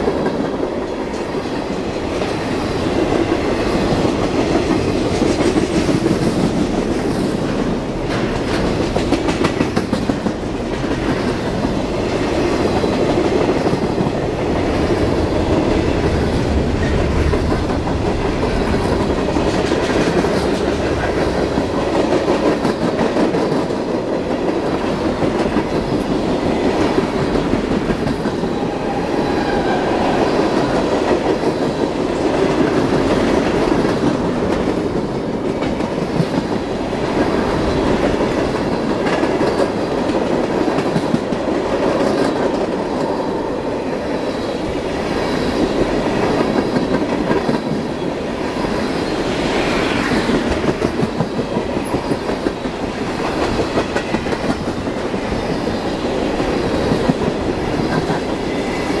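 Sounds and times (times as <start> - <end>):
train rumble: 0.0 - 59.0.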